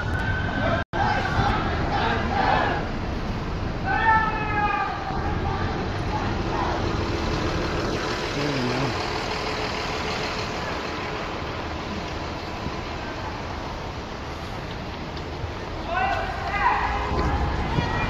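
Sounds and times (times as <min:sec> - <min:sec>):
city street traffic noise: 0:00.0 - 0:18.0
low voice: 0:08.3 - 0:09.0.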